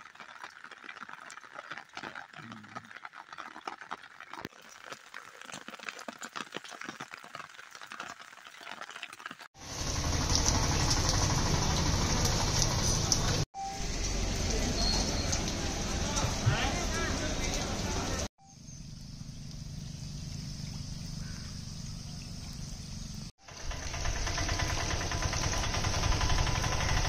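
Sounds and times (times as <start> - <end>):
rain falling: 9.4 - 18.3.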